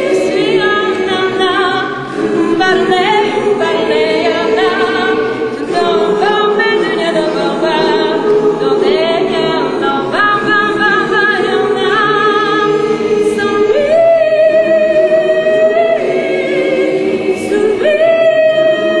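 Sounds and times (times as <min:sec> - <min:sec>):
choir holding sustained chords: 0:00.0 - 0:19.0
woman singing with vibrato: 0:00.0 - 0:19.0.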